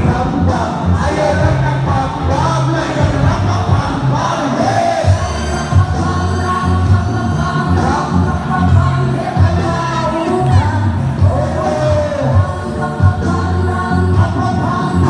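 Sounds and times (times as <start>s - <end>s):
amplified person singing or rapping: 0.0s - 15.0s
loud live music over pa: 0.0s - 15.0s.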